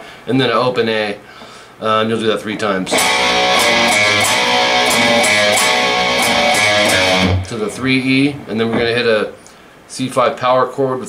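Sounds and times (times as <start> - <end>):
electric guitar riff: 2.9 - 7.8.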